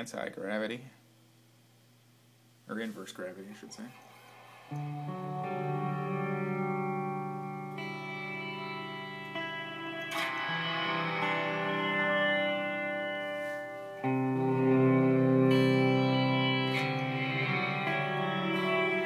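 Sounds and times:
electric guitar chords with reverb: 4.0 - 19.0.

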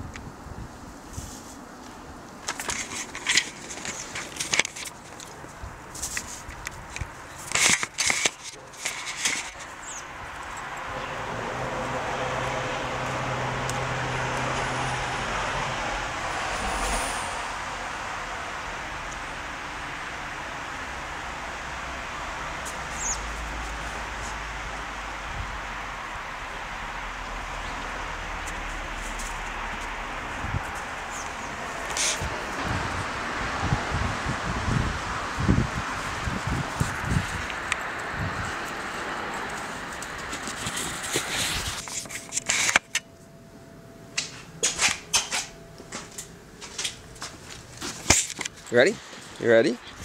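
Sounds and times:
wind buffeting microphone: 0.0 - 3.2, 28.8 - 41.9
rushing outdoor noise: 0.0 - 50.0.

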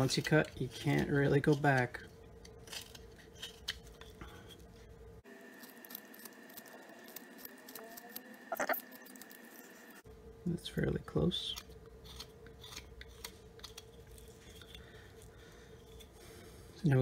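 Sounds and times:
knife scraping wood: 11.6 - 16.5.

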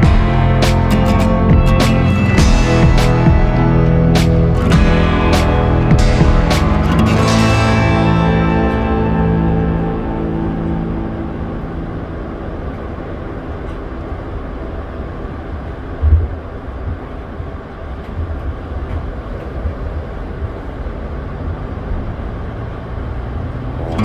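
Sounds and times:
aircraft rolling rumble: 0.0 - 24.0.

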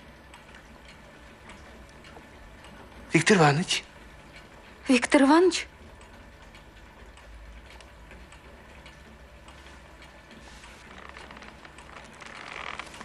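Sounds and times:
light irregular ticking: 0.2 - 13.0.

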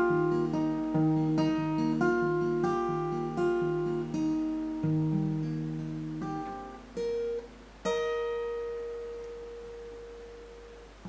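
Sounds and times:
acoustic guitar note ringing: 0.0 - 11.0.

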